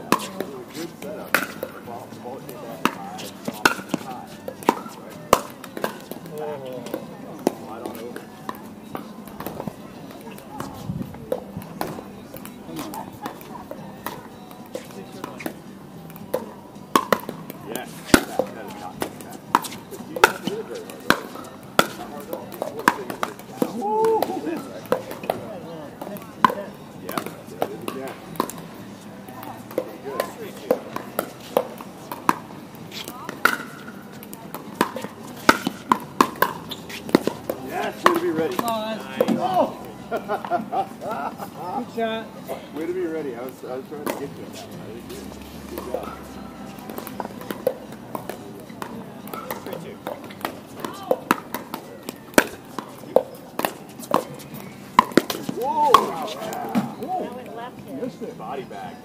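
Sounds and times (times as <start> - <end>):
paddles hitting plastic ball: 2.7 - 28.7, 29.3 - 40.5, 43.5 - 44.4, 46.6 - 57.0.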